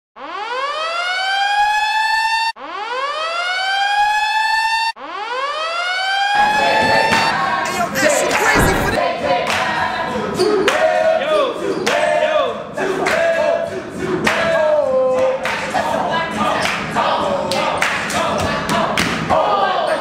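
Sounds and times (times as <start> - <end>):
siren-like wind-up sound effect: 0.3 - 7.4
loud noise with sharp knocks: 8.4 - 9.0.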